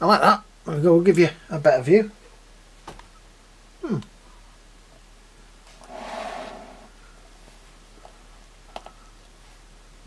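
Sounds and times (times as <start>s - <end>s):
short rush of noise: 5.8s - 7.0s.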